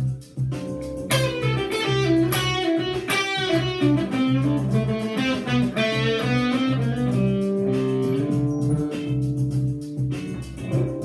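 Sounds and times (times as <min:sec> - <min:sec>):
electric guitar picking phrases: 0:01.0 - 0:11.0.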